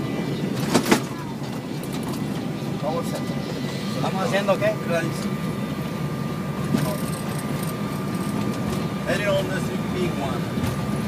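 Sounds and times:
jet engines running: 0.0s - 11.0s
thin constant whine: 0.0s - 11.0s.

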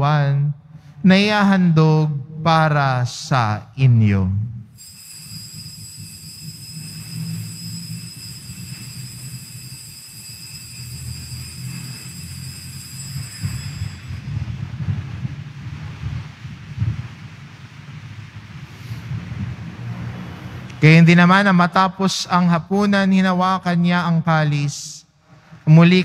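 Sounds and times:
high-pitched whine: 4.7s - 15.0s.

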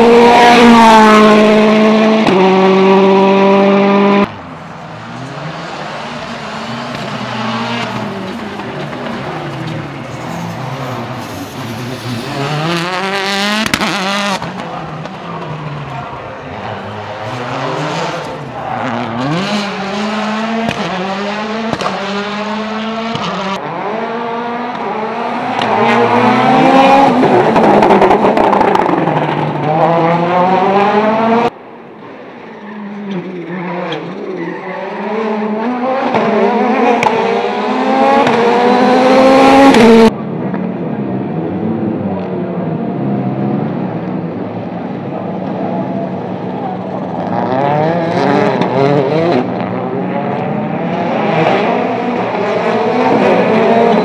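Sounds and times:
rally car engines revving: 0.0s - 54.0s.

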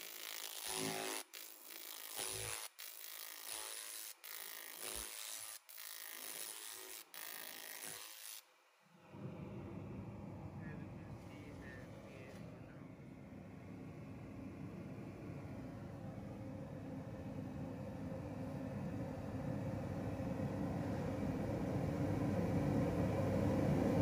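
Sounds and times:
laser cleaner crackling hiss: 0.0s - 8.4s
dull low background noise: 8.6s - 20.5s.

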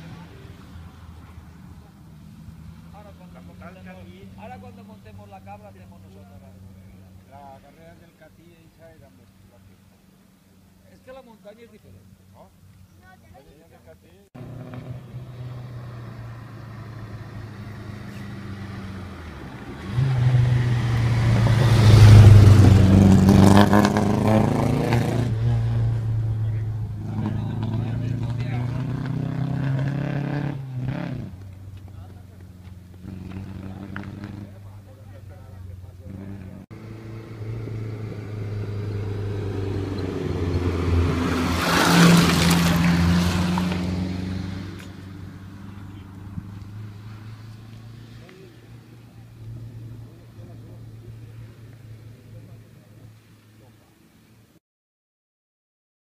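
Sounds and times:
car approaching: 0.0s - 54.5s
rally car engine revving past: 14.4s - 31.4s, 32.9s - 34.9s, 36.1s - 52.1s.

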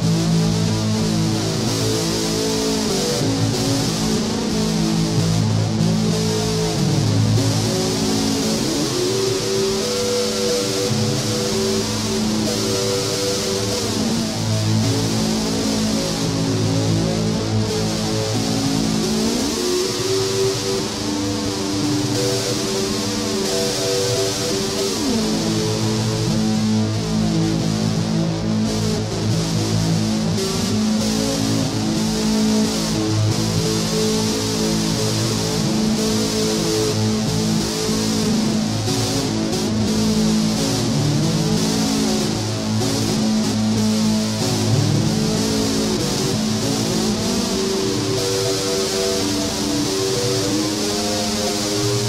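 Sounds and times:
distorted electric guitar: 0.0s - 52.0s.

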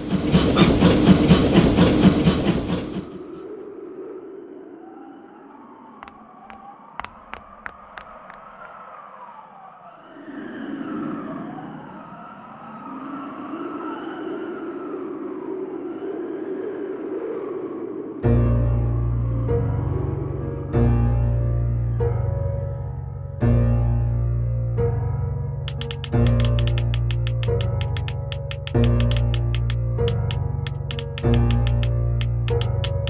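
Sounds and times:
train passing: 0.0s - 3.7s
sharp clicks: 6.0s - 8.8s, 25.7s - 33.0s.

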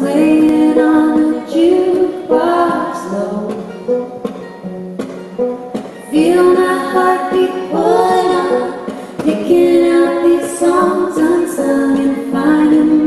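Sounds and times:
women singing in harmony: 0.0s - 3.7s, 6.0s - 13.0s
plucked acoustic guitar: 0.0s - 13.0s.

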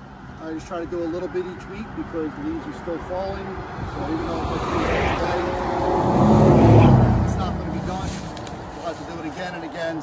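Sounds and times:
vehicle passing: 2.5s - 10.0s.

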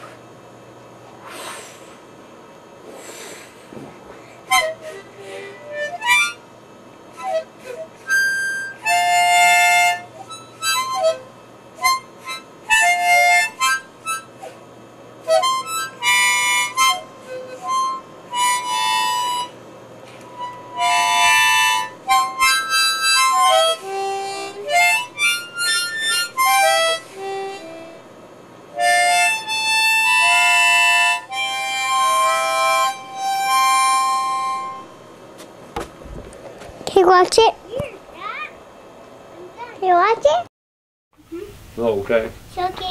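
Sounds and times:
child playing harmonica: 4.4s - 6.4s, 7.1s - 14.6s, 15.2s - 19.6s, 20.2s - 28.1s, 28.7s - 35.0s.

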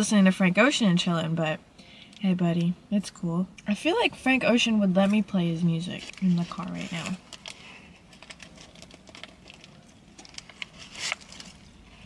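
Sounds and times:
chewing a wrapped burrito: 6.1s - 12.0s.

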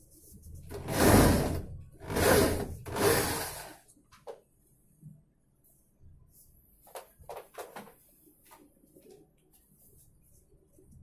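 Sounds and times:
sliding door rolling on track: 0.8s - 3.6s.

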